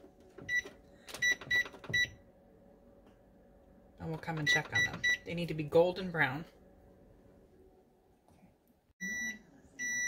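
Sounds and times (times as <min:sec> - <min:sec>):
oven keypad beeping: 0:00.4 - 0:02.2, 0:04.3 - 0:05.3, 0:09.0 - 0:10.0.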